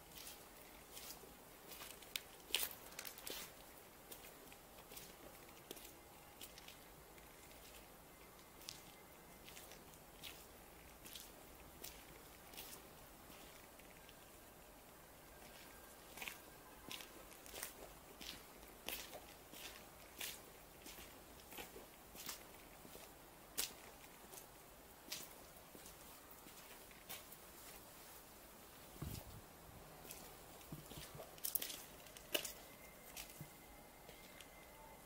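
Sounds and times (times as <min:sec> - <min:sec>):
footsteps on gritty pavement: 0:00.1 - 0:07.9, 0:08.6 - 0:14.3, 0:15.4 - 0:27.9, 0:30.0 - 0:34.4.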